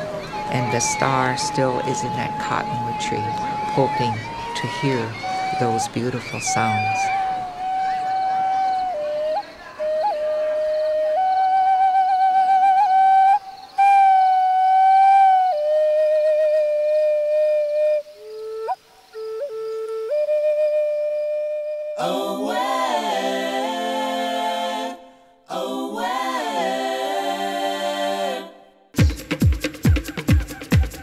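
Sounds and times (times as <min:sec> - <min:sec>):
flute-like solo melody: 0:00.0 - 0:22.6
several voices singing together: 0:22.0 - 0:28.8.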